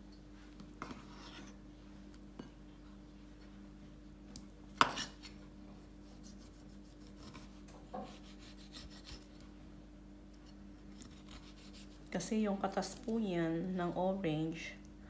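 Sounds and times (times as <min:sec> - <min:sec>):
knife slicing on cutting board: 0:06.0 - 0:09.4, 0:11.0 - 0:12.0.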